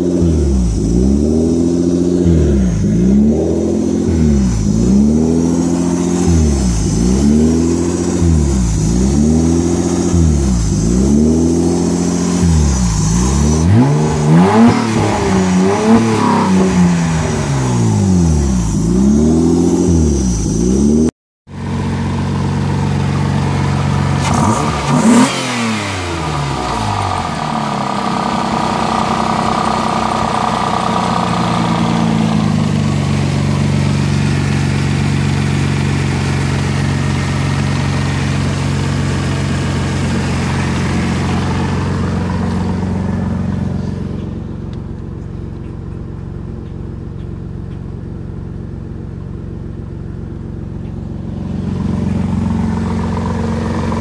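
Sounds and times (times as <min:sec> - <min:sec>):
engine hunting idle: 0:00.0 - 0:19.2, 0:21.5 - 0:54.0
engine rev blip: 0:00.0 - 0:21.1, 0:24.1 - 0:46.0, 0:50.7 - 0:54.0.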